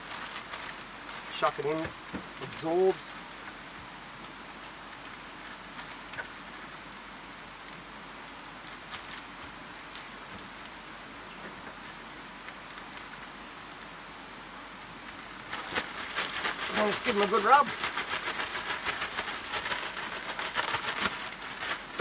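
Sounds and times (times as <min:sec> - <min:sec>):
plastic bag crinkling: 0:00.0 - 0:03.4, 0:08.6 - 0:10.7, 0:15.1 - 0:22.0
steady background hiss: 0:00.0 - 0:22.0.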